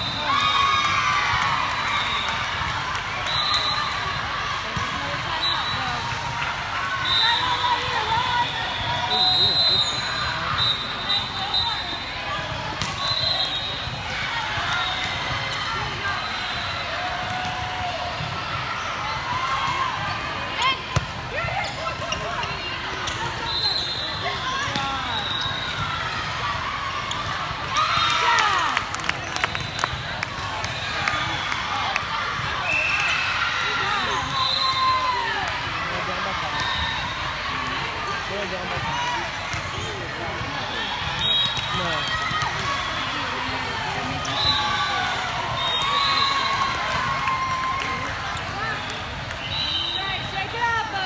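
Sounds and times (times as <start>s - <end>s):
crowd cheering: 0.0s - 21.6s, 23.4s - 51.0s
players shouting calls: 0.0s - 51.0s.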